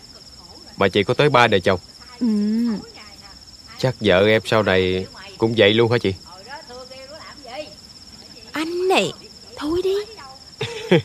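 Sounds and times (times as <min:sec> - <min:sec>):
night insects trilling: 0:00.0 - 0:11.0
faint voice: 0:02.1 - 0:03.2.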